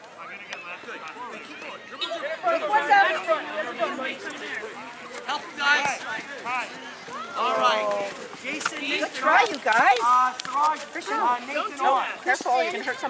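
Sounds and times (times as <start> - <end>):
children calling and chattering: 0.0 - 13.0.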